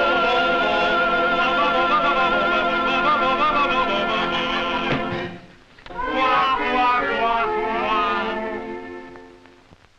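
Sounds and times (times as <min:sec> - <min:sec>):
men singing crooned phrase: 0:00.0 - 0:05.1, 0:05.9 - 0:08.8.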